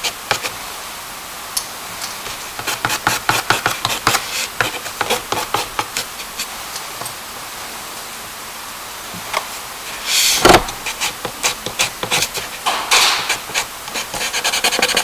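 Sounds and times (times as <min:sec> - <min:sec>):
charcoal scratching on paper: 0:02.3 - 0:06.5, 0:10.1 - 0:12.6, 0:13.2 - 0:15.0.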